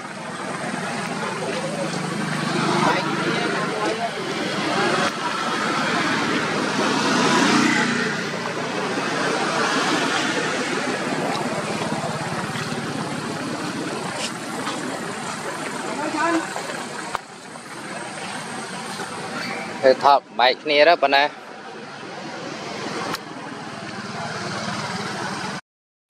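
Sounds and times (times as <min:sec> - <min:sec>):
road vehicle running: 0:00.0 - 0:25.6.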